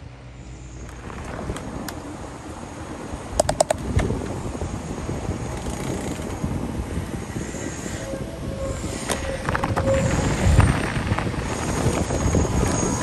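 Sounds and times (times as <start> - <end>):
tyres and wind noise: 0.0 - 13.0
bicycle clicks: 3.4 - 4.3, 5.5 - 6.4.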